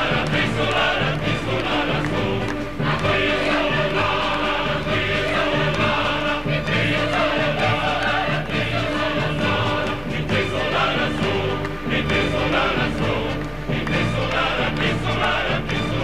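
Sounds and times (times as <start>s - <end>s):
voices singing together: 0.0s - 16.0s.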